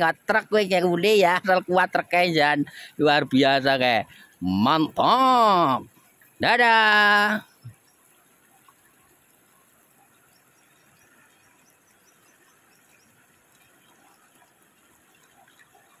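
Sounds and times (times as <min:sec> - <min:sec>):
river running over stones: 0:00.0 - 0:16.0.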